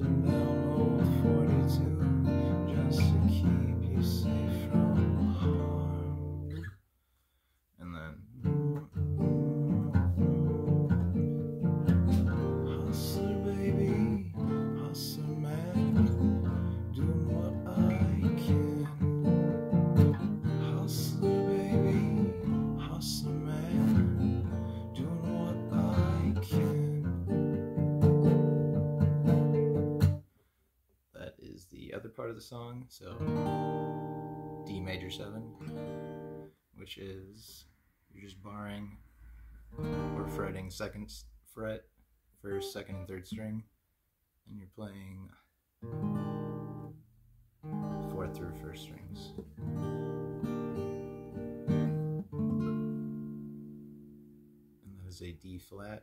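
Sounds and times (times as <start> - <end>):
acoustic guitar strummed and picked: 0.0 - 6.7, 8.4 - 30.3, 33.1 - 36.6, 39.7 - 40.9, 42.5 - 43.4, 45.8 - 47.0, 47.6 - 54.8.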